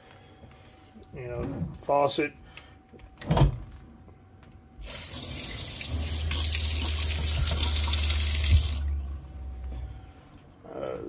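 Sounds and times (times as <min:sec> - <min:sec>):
low steady hum: 0:00.0 - 0:11.0
faucet water splashing in metal sink: 0:04.9 - 0:09.0.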